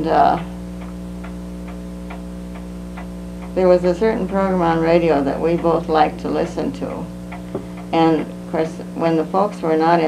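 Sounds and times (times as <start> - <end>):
clock ticking: 0.0 - 9.9
electrical hum: 0.0 - 10.0.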